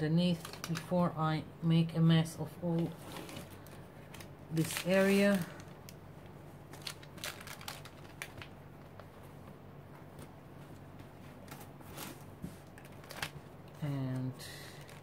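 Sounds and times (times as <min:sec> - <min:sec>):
paper rustling: 0:02.8 - 0:05.8, 0:06.7 - 0:09.4, 0:11.0 - 0:13.4.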